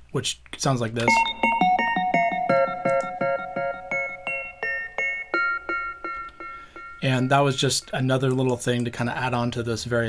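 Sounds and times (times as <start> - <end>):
ringing plucked synth melody: 1.1 - 8.1.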